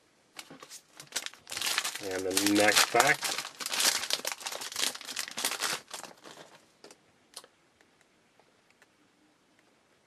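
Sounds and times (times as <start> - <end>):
foil wrapper tearing and crinkling: 0.9 - 6.6.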